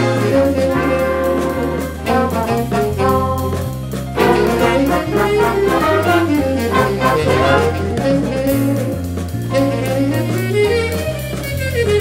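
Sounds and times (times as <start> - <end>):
big band mambo: 0.0 - 12.0.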